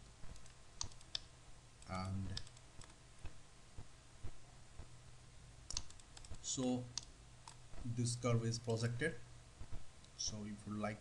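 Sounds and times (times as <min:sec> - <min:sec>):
faint low hum: 0:00.0 - 0:11.0
computer mouse clicking: 0:00.3 - 0:03.4, 0:05.7 - 0:07.6.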